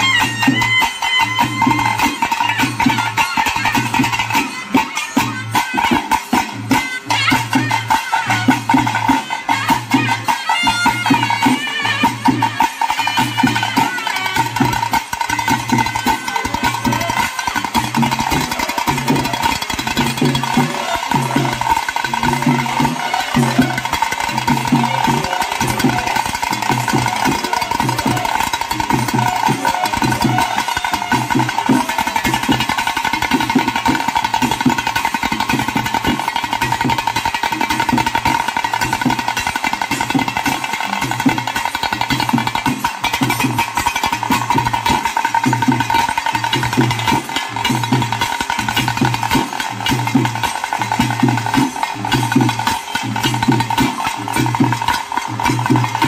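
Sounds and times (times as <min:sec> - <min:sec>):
drum keeping a steady beat: 0:00.0 - 0:56.0
drums rolled fast with sticks: 0:00.0 - 0:56.0.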